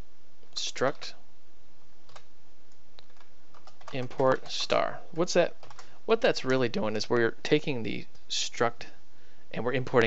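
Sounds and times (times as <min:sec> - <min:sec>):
computer keyboard typing: 0:03.0 - 0:04.8, 0:05.6 - 0:06.7.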